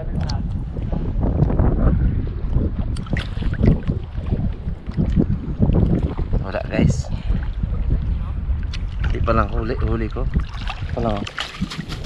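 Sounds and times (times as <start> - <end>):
wind noise on microphone: 0.0 - 12.0
small waves lapping and splashing: 2.8 - 12.0.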